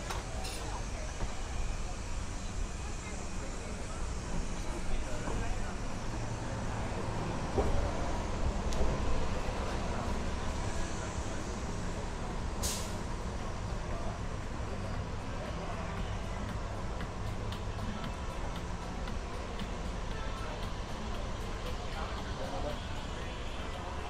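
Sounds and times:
low rumble of traffic: 0.0s - 24.0s
short sharp hiss: 12.6s - 13.0s.

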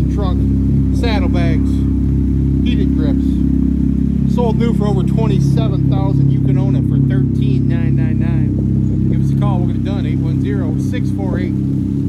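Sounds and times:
engine idling: 0.0s - 12.0s
person speaking: 4.2s - 11.6s.

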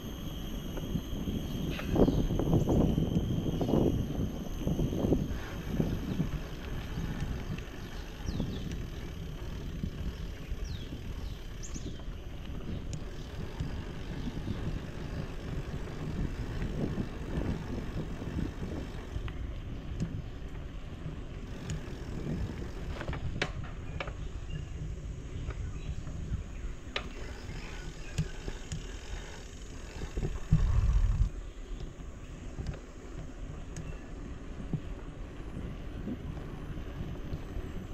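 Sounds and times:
bicycle tyres rolling on pavement: 0.0s - 37.9s
wind rumbling on microphone: 0.0s - 37.9s.

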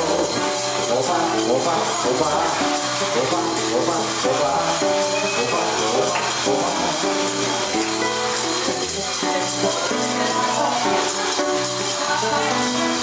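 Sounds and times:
held melodic notes: 0.0s - 13.0s
samba music: 0.0s - 13.0s
shaker and tambourine percussion: 0.0s - 13.0s.

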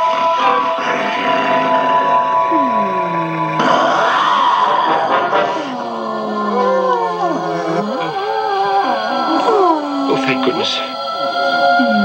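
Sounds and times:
dramatic score with wavering tones: 0.0s - 12.0s
groaning growling cries: 0.8s - 12.0s.

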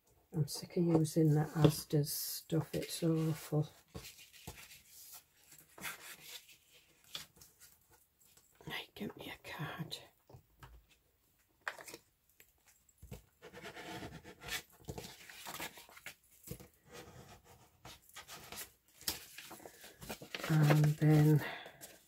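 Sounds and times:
paper rustling and rubbing: 2.8s - 7.7s, 13.5s - 22.0s.

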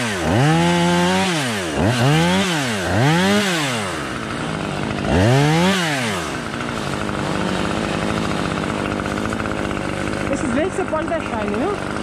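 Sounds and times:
chainsaw idling and revving: 0.0s - 12.0s.

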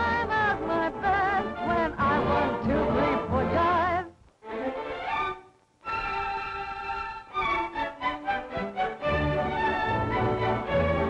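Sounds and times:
orchestra playing dance music: 4.7s - 11.0s.

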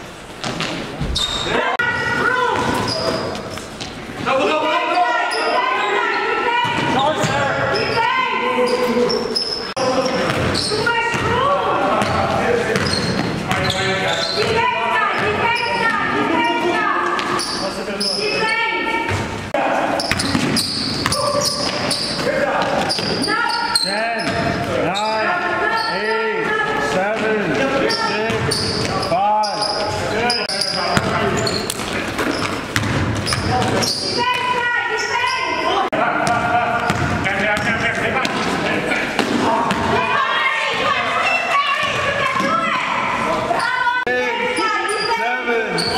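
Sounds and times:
players' voices echoing: 0.6s - 45.9s
basketball bouncing on wooden floor: 20.1s - 21.9s, 28.3s - 28.9s, 31.0s - 33.8s, 36.2s - 38.4s.

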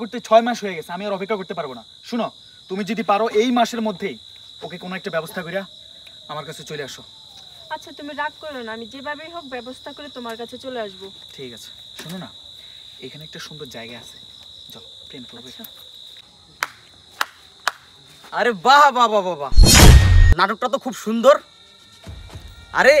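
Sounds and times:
crickets chirring: 0.0s - 21.6s.

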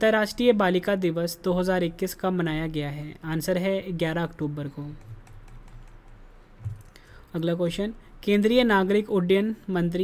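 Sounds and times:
faint computer clicking: 4.7s - 7.1s.

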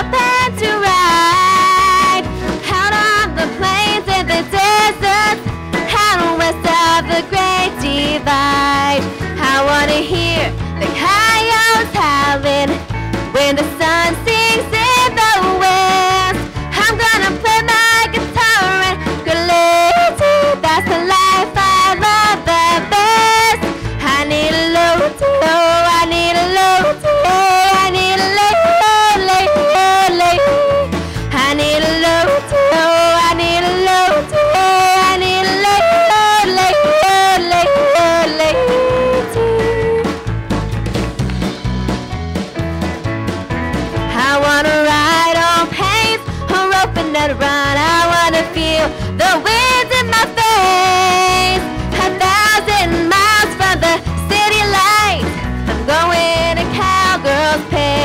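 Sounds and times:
drums: 0.0s - 58.0s
guitar: 0.0s - 58.0s
woman yodeling: 19.3s - 23.5s, 24.1s - 40.1s.

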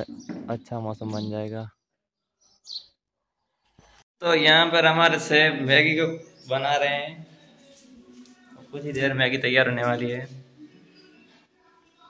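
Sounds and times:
high-pitched bird chirps: 2.4s - 3.0s.

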